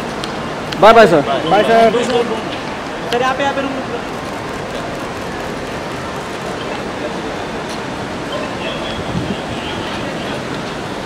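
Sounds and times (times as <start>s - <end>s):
busy airport ambient rumbling hiss: 0.0s - 11.0s.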